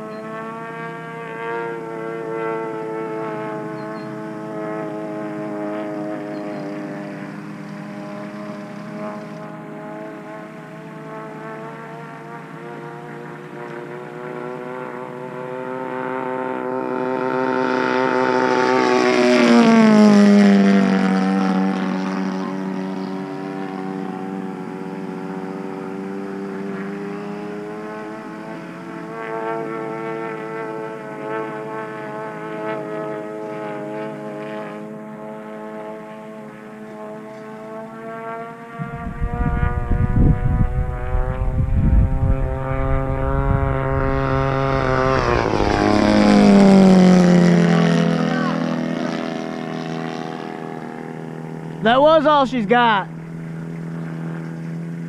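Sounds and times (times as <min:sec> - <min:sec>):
model plane engine droning: 0:00.0 - 0:55.0
gusty wind rumble on microphone: 0:38.8 - 0:47.2.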